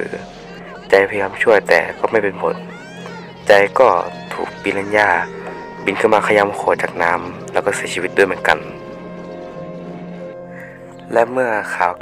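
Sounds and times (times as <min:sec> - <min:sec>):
high wavering squeal: 0:00.0 - 0:09.1
horror film soundtrack: 0:00.0 - 0:12.0.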